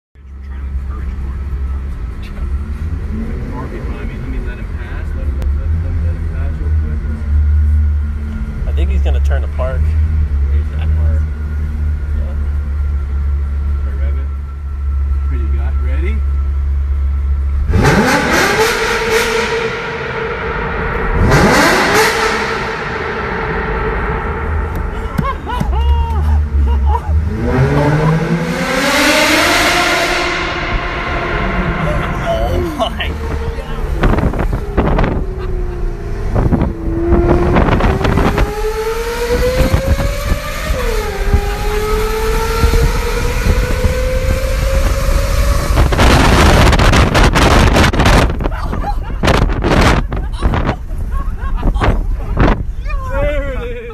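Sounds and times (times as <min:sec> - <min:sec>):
car engine low rumble: 0:00.2 - 0:53.9.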